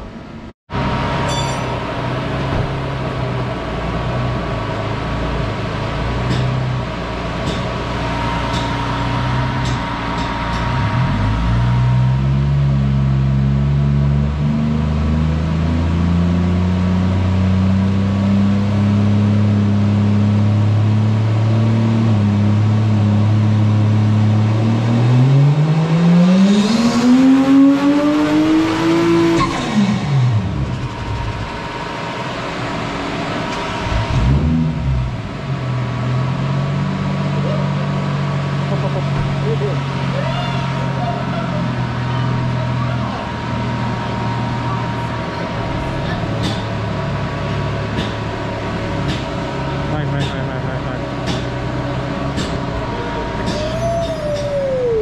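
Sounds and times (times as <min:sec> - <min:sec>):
car engine revving on dyno: 0:00.7 - 0:53.7.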